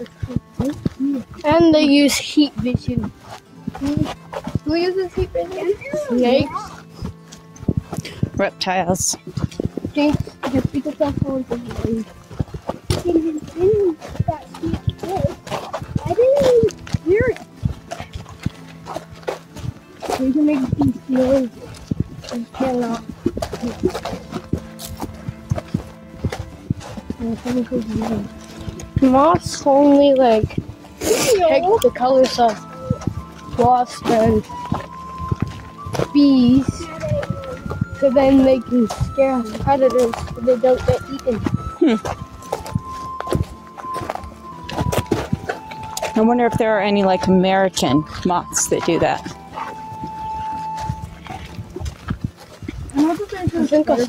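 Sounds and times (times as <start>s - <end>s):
footsteps on dirt trail: 0.0s - 54.0s
high whistled note: 38.9s - 51.6s.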